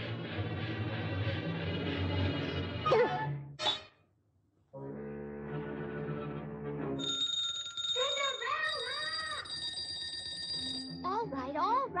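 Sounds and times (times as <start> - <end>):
call bells ringing: 7.0 - 11.6.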